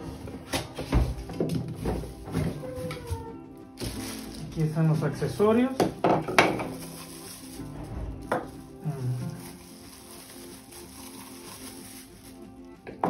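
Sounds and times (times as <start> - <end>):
plastic bags crinkling: 0.0 - 13.0
soft background music: 0.0 - 13.0
plastic pieces knocking on table: 5.8 - 7.0.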